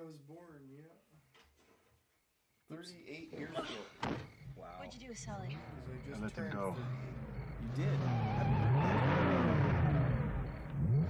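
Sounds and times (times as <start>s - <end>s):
car engine revving and accelerating: 6.2s - 11.0s.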